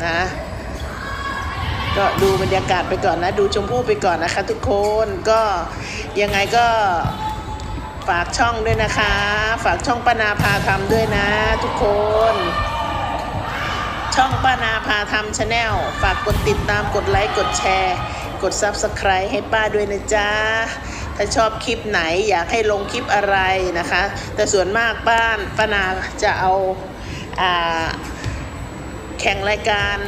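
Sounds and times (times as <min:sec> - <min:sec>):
balls bouncing on court floor: 0:02.0 - 0:03.8, 0:06.2 - 0:19.1
volleyballs being hit: 0:15.4 - 0:18.0.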